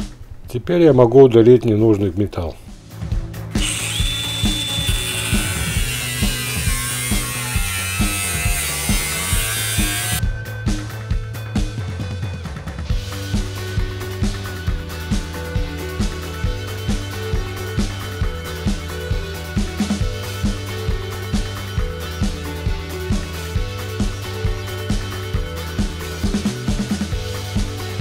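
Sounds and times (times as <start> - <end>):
background music with steady beat: 2.1 - 28.0
angle grinder cutting sheet steel: 3.6 - 10.2.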